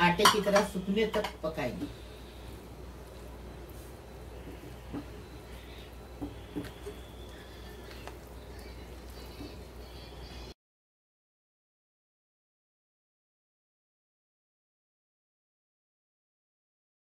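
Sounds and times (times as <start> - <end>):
steady low hum: 0.0 - 10.6.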